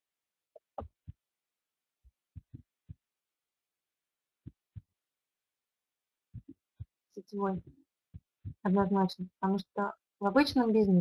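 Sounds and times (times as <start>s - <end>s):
faint low thumps: 2.4s - 3.0s, 6.3s - 9.2s
woman's voice: 7.2s - 7.7s, 8.7s - 11.0s.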